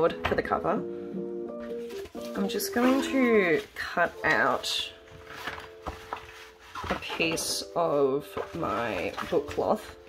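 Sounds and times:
cloth rustling: 1.6s - 10.0s.

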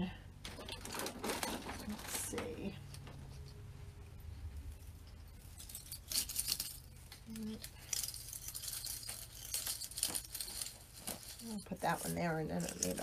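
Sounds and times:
pine branches rustling and crackling: 0.4s - 3.7s, 4.3s - 13.0s.

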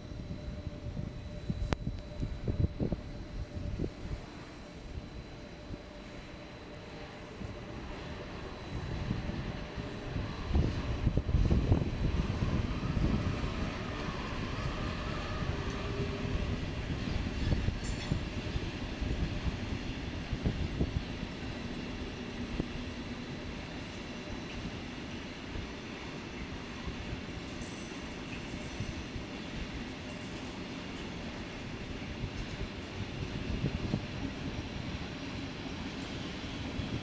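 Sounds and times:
freight train rumbling past: 0.0s - 37.0s.

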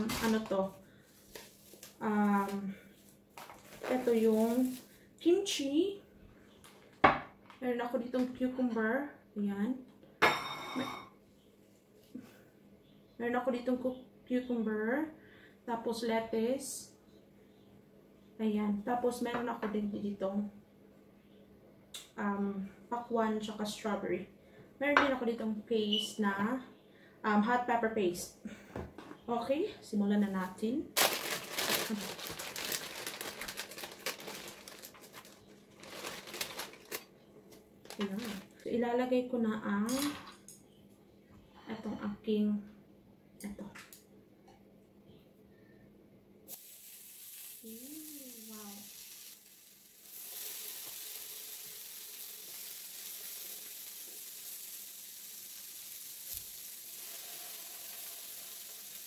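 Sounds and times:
plastic packet tearing: 0.0s - 0.5s, 3.4s - 4.9s, 31.0s - 37.1s, 37.8s - 38.6s
plastic wrapper crackling: 0.0s - 0.7s, 3.4s - 5.0s, 31.0s - 37.1s, 37.8s - 38.6s
meat sizzling on a grill: 46.5s - 59.0s.

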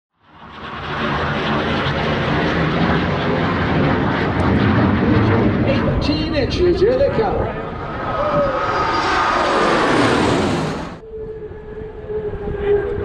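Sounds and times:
jet engine roar: 0.2s - 13.0s.

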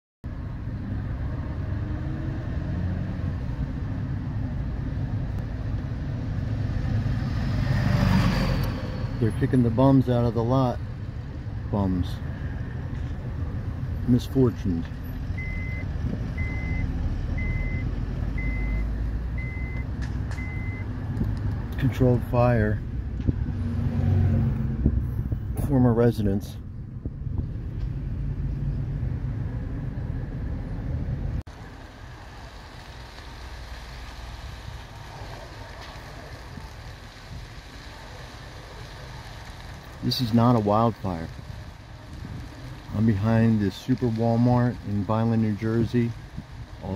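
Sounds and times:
outdoor background noise: 0.2s - 46.9s
car rumble from inside: 0.3s - 46.9s.

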